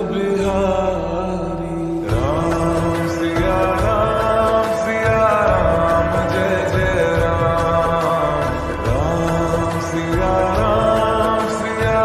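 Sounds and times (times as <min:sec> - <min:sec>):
devotional song: 0:00.0 - 0:12.0.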